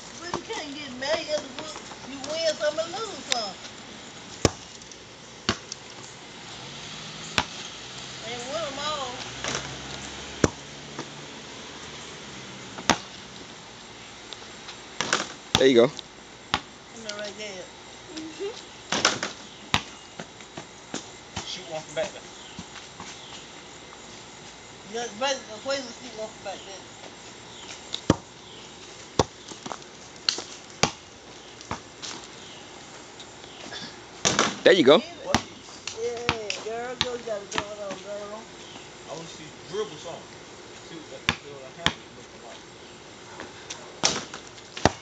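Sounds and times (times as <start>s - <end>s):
basketball bouncing on hard ground: 0.2s - 3.6s, 4.4s - 4.8s, 5.4s - 6.0s, 7.3s - 7.7s, 8.7s - 11.2s, 12.7s - 13.2s, 15.0s - 15.8s, 16.5s - 17.2s, 18.9s - 21.6s, 27.6s - 32.3s, 34.2s - 34.6s, 35.2s - 38.2s, 41.2s - 42.1s, 43.4s - 45.0s
basketball hitting hoop: 7.3s - 7.6s, 10.4s - 11.1s, 12.8s - 13.1s, 34.2s - 34.6s.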